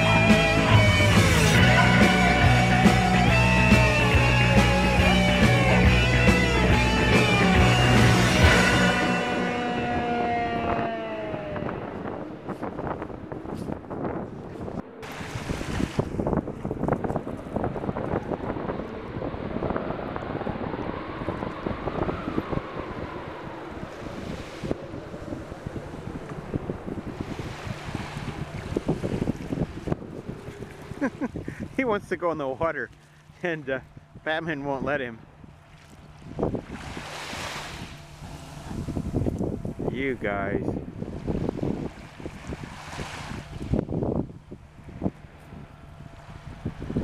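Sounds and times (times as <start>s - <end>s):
music: 0.0s - 10.4s
waves lapping at shore: 0.0s - 18.2s, 23.1s - 47.0s
wind buffeting microphone: 0.0s - 47.0s.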